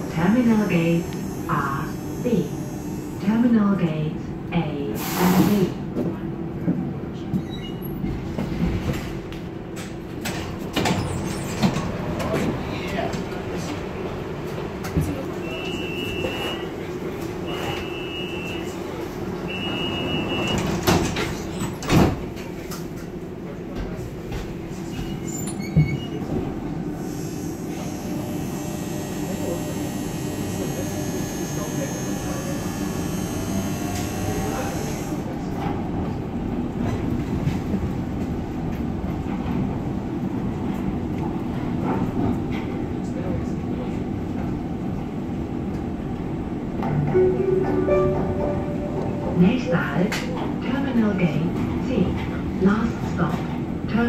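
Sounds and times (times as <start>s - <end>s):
monorail car rumbling on track: 0.0s - 54.0s
door warning beeps: 15.5s - 16.7s, 19.5s - 20.8s.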